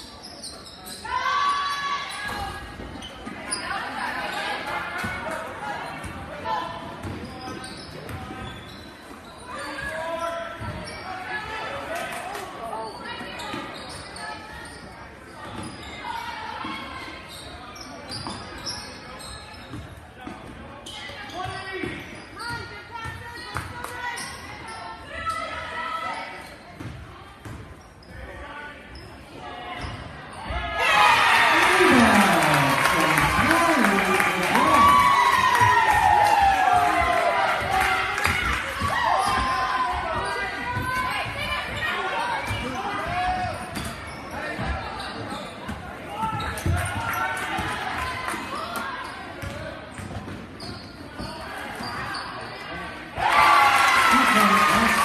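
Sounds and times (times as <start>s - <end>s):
hubbub of indistinct voices: 0.0s - 55.0s
crowd cheering: 30.7s - 40.1s, 53.2s - 55.0s.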